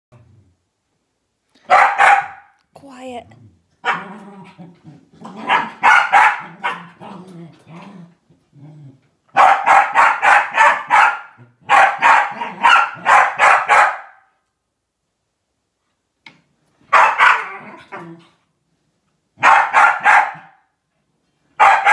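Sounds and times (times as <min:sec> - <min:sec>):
dog barking sharply: 0:01.6 - 0:02.6, 0:03.8 - 0:04.1, 0:05.5 - 0:06.9, 0:09.3 - 0:14.3, 0:16.9 - 0:17.5, 0:19.4 - 0:20.6, 0:21.6 - 0:21.9
dog growling and yapping: 0:03.2 - 0:09.3, 0:12.3 - 0:12.7, 0:17.2 - 0:18.5.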